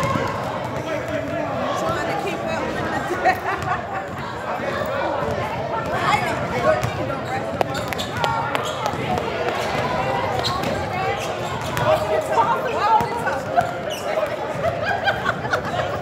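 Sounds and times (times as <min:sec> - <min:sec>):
voices talking in a gym: 0:00.0 - 0:16.0
basketball bouncing on hardwood: 0:06.8 - 0:10.9.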